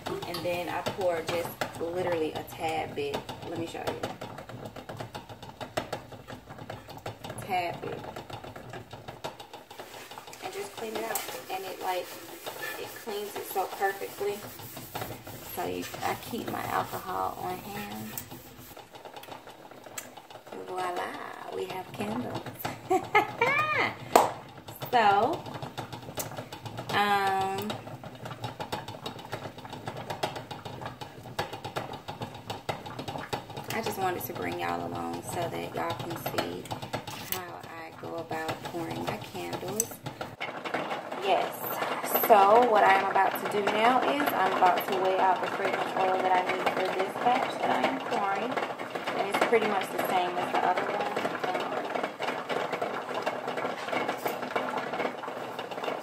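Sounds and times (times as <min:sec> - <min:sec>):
small items clattering on table: 0:03.3 - 0:56.0.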